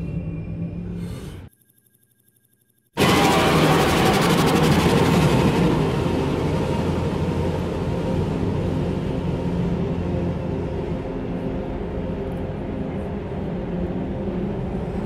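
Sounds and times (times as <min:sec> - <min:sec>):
steady low tones: 0:03.0 - 0:15.0.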